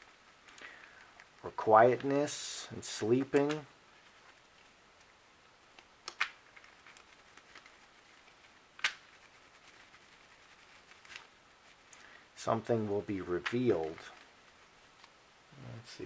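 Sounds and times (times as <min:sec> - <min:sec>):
playing cards clicking: 0:03.2 - 0:03.7, 0:05.7 - 0:07.8, 0:08.8 - 0:09.2, 0:13.4 - 0:14.3.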